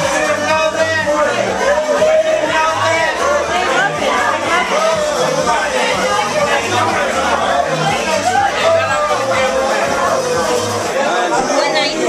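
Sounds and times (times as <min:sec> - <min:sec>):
crowd talking: 0:00.0 - 0:12.0
music playing: 0:00.0 - 0:12.0.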